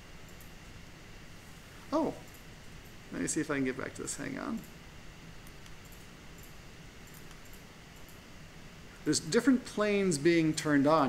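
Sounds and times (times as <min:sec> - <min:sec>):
faint low hum: 0:00.0 - 0:11.0
man speaking: 0:01.9 - 0:02.2, 0:03.1 - 0:04.6, 0:09.0 - 0:11.0.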